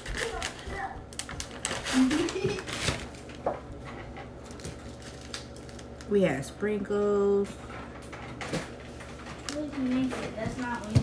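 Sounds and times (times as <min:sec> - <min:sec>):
plastic packaging rattling: 0:00.0 - 0:06.1, 0:07.7 - 0:11.0.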